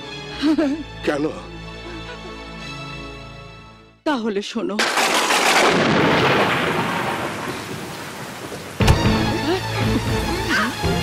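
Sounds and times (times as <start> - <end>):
dramatic film music: 0.0 - 4.2, 8.8 - 11.0
thunder rumbling: 4.8 - 9.6
heavy rain hissing: 5.0 - 11.0.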